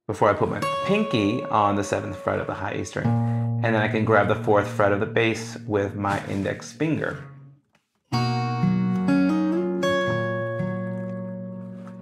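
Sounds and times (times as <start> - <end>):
fingerpicked acoustic guitar: 0.6 - 12.0.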